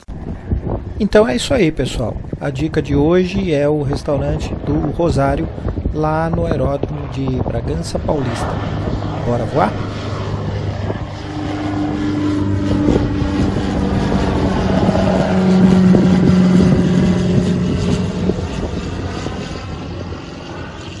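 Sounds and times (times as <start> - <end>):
propeller aircraft flying overhead: 0.0 - 21.0.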